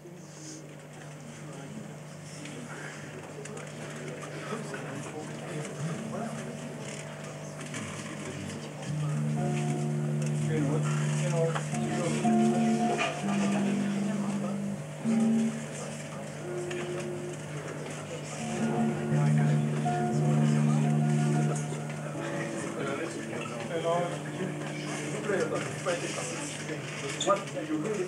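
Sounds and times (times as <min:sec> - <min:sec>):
electric bass notes and chords: 0:08.9 - 0:25.8.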